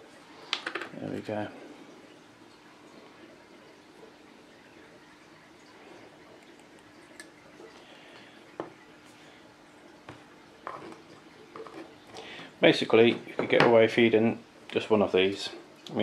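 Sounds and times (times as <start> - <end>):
faint room hum: 0.0 - 16.0.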